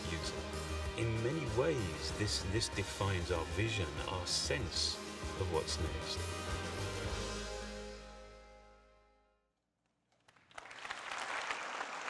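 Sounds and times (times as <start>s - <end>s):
audience applause: 10.3s - 12.0s.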